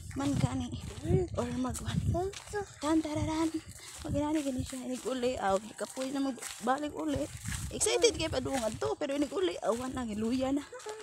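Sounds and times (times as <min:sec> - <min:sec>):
woman panting: 0:03.6 - 0:04.1.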